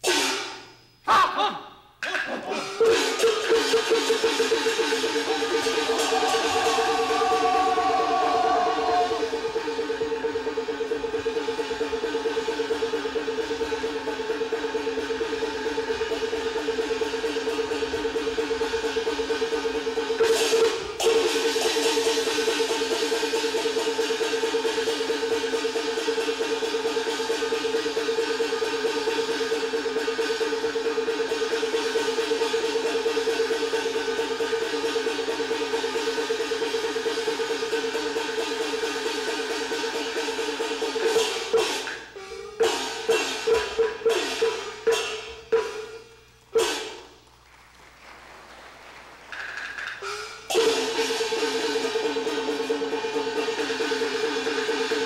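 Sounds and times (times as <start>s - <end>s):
opera instrumental accompaniment: 1.1s - 47.0s
short cymbal-like clash: 46.6s - 47.1s.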